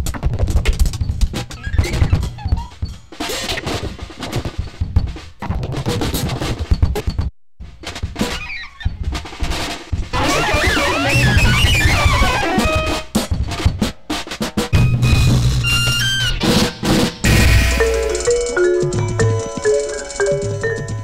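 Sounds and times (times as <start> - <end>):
drum kit playing: 9.0 - 21.0.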